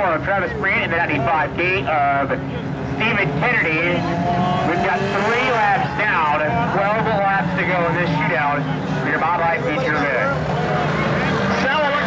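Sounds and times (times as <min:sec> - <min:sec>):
race car engines droning: 0:00.0 - 0:12.0.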